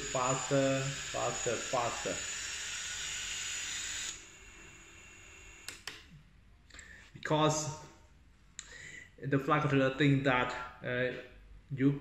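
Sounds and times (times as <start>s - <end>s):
drone motors whining: 0.0s - 5.8s
sharp clicks: 5.6s - 6.1s.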